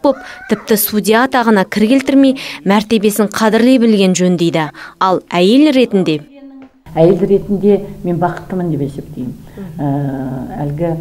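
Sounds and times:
woman speaking hesitantly: 0.0 - 2.8.

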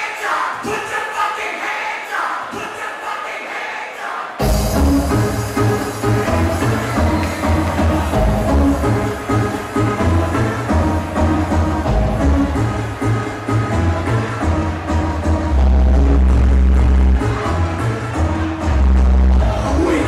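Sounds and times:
electronic dance music with heavy bass: 0.0 - 20.0.

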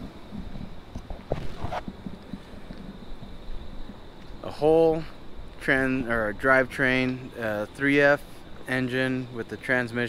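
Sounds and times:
wind rumbling on microphone: 0.0 - 7.4.

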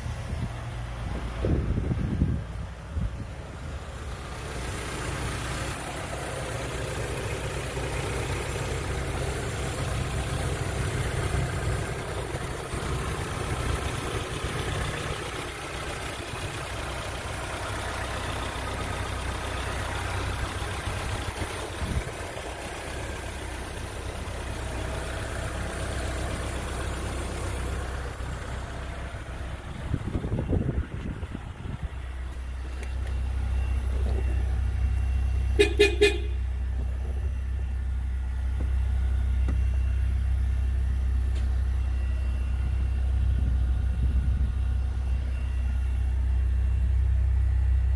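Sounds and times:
engine knocks: 0.0 - 37.4, 38.4 - 40.1
car engine idling: 0.0 - 47.9.

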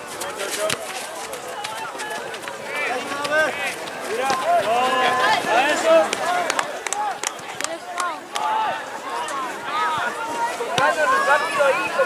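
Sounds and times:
voices shouting: 1.4 - 12.0.

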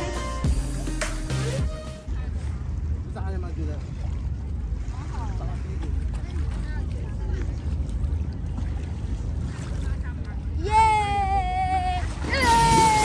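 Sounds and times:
steady low rumble: 0.4 - 13.0
faint crowd voices: 2.0 - 12.8
boy shouting high-pitched: 10.6 - 13.0.

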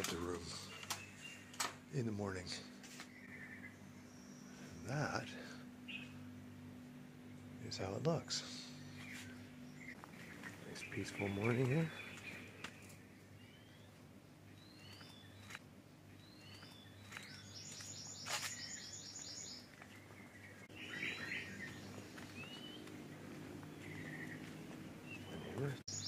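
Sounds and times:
bird chatter: 0.0 - 6.3, 7.6 - 14.0, 14.6 - 15.6, 16.2 - 26.0
low steady hum: 0.0 - 26.0.

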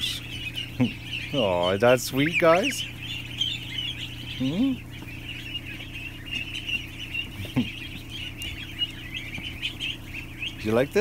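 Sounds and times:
ducklings peeping: 0.0 - 11.0
electric fan humming: 0.0 - 11.0
low rising bird call: 0.0 - 11.0.

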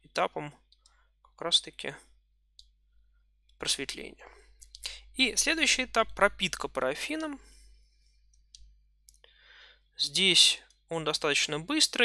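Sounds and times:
faint clicks: 4.6 - 5.0, 8.3 - 9.3
short breath in: 9.2 - 9.9.

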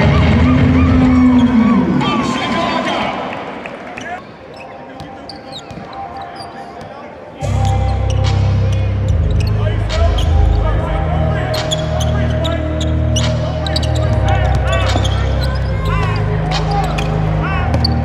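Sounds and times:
sneakers squeaking: 3.8 - 18.0.

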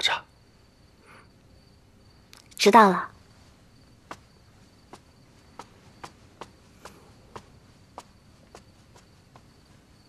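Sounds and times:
footsteps on tiled floor: 4.0 - 10.0.

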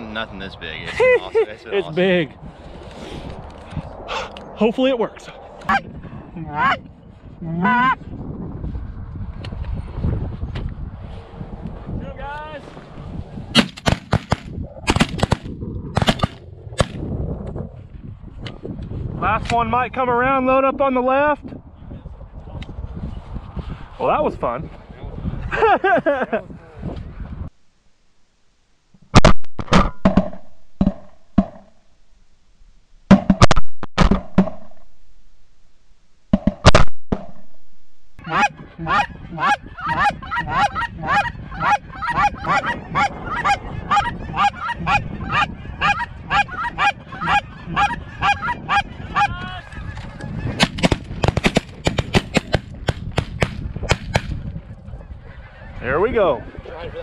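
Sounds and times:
geese calling: 7.6 - 8.0, 38.2 - 50.7.

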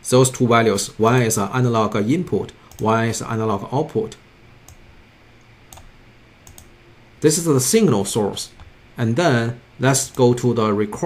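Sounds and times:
faint room hiss: 0.0 - 11.0
computer mouse clicks: 2.7 - 2.9, 4.6 - 4.8, 5.4 - 6.7.

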